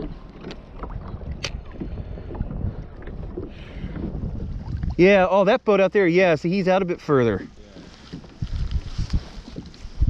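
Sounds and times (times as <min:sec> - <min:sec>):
wind buffeting microphone: 0:00.0 - 0:05.5, 0:06.7 - 0:10.0
water lapping at hull: 0:00.0 - 0:10.0.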